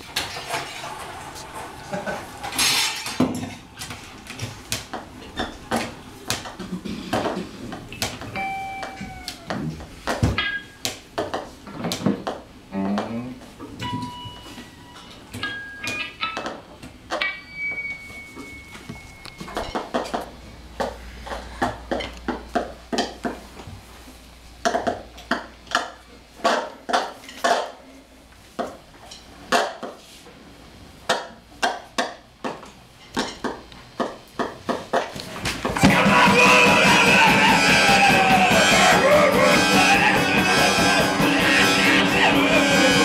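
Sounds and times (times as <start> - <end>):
ringing pings: 8.4 - 9.3, 13.8 - 16.4, 17.2 - 19.8
high tone sinking in pitch: 8.4 - 9.7.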